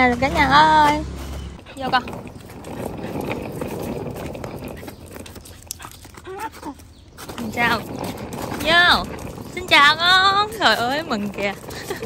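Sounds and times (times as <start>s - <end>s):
suitcase wheels rumbling on concrete: 0.0s - 12.0s.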